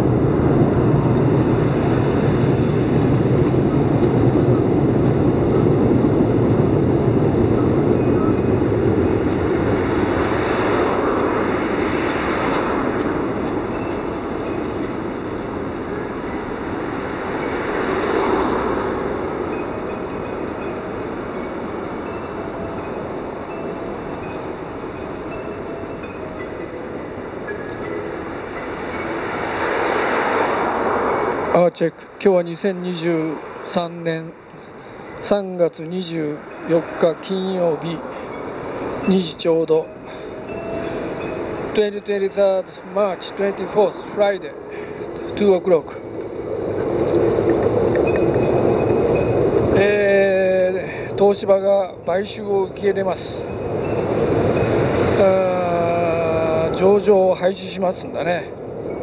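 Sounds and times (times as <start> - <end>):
train rumbling on elevated railway: 0.0 - 59.0.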